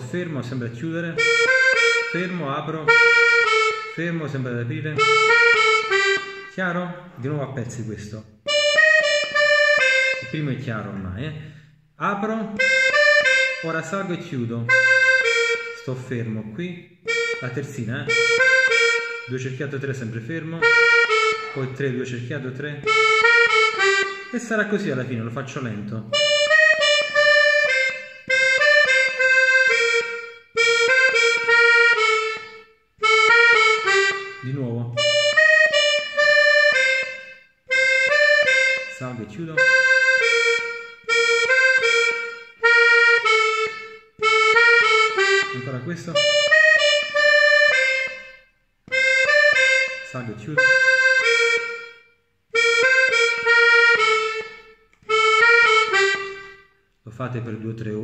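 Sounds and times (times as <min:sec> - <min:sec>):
button accordion melody: 0:00.0 - 0:58.0.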